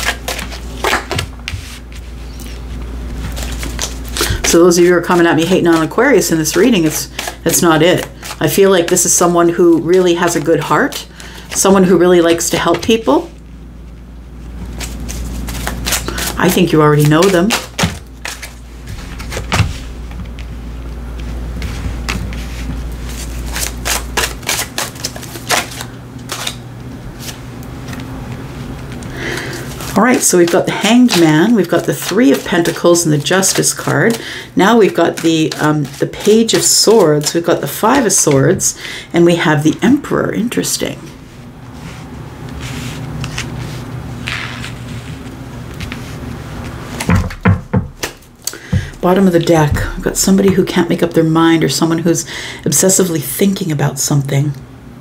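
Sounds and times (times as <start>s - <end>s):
low steady hum: 0.0s - 55.0s
cards knocking on table: 47.0s - 49.0s.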